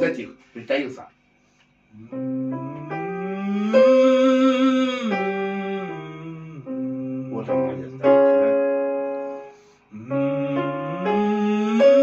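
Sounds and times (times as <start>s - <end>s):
electronic keyboard playing chords: 2.0s - 12.0s.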